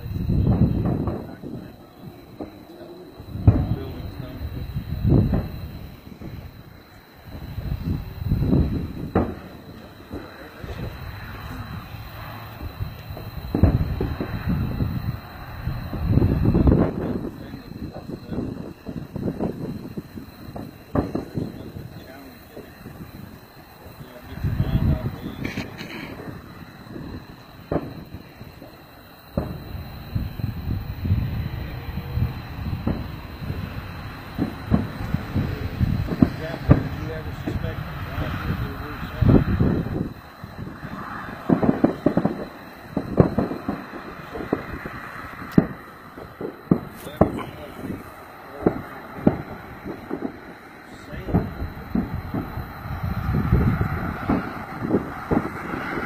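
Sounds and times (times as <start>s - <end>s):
distant fireworks bangs and cracks: 0.0s - 56.0s.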